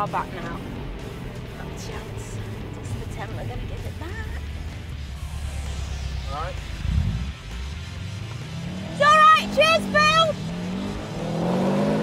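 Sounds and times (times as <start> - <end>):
background music: 0.0 - 12.0
car engine idling: 0.0 - 12.0.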